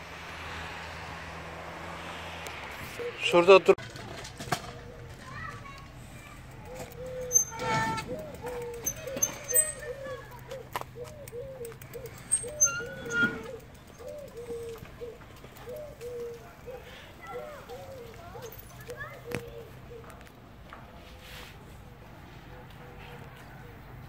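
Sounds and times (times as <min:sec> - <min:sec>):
children calling out: 0:05.2 - 0:10.8, 0:15.9 - 0:20.1
hoopoe hooting: 0:06.7 - 0:18.2.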